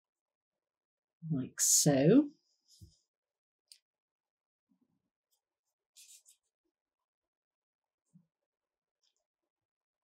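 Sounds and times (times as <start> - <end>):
crochet hook rustling through yarn: 6.0 - 6.5.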